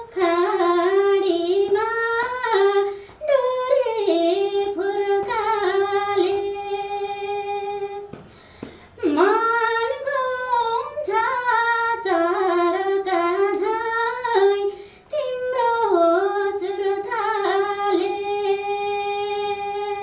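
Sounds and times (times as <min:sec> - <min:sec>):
woman singing unaccompanied: 0:00.0 - 0:08.2, 0:09.0 - 0:20.0.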